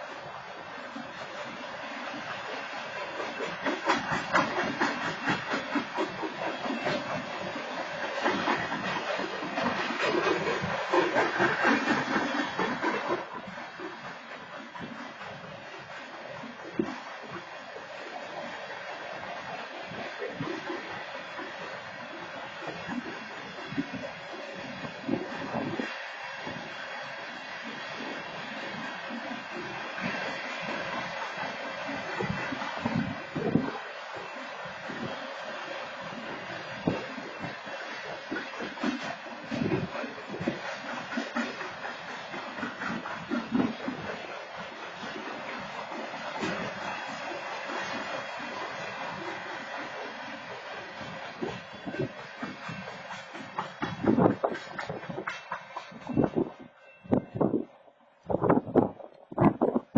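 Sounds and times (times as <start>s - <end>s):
train wheels clattering: 0.0s - 57.7s
train rumble: 0.0s - 59.9s.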